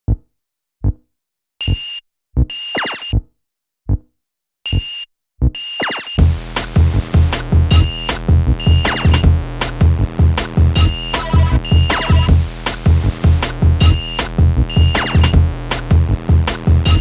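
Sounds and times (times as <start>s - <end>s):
short synth notes: 6.2s - 9.3s
drum machine kicks: 6.2s - 17.0s.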